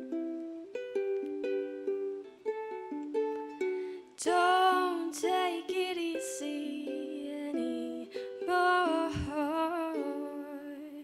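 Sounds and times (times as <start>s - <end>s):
ukulele chords: 0.0s - 11.0s
woman singing with vibrato: 4.0s - 11.0s.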